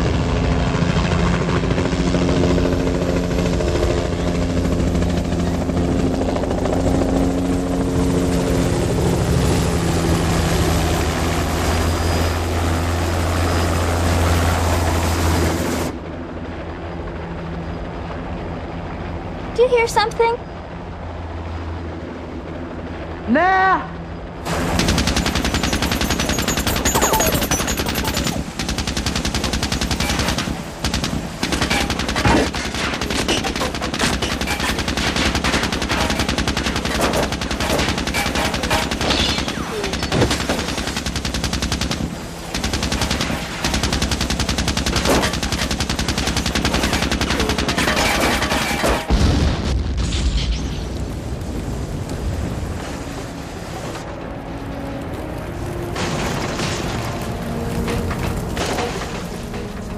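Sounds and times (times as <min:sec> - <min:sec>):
automatic gunfire: 0:24.5 - 0:49.2
explosion with deep boom: 0:49.1 - 0:52.8.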